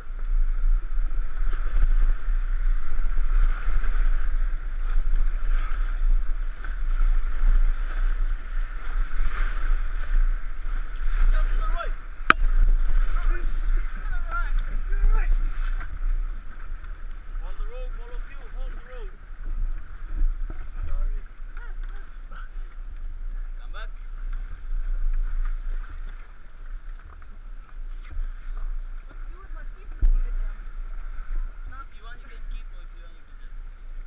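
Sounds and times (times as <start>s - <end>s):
river water rushing and splashing: 0.0s - 34.0s
wind rumble on microphone: 0.0s - 34.0s.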